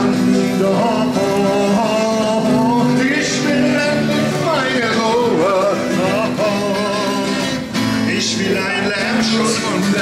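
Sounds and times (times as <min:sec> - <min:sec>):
group of voices singing along: 0:00.0 - 0:10.0
man singing: 0:00.0 - 0:10.0
strummed twelve-string guitar: 0:00.0 - 0:10.0.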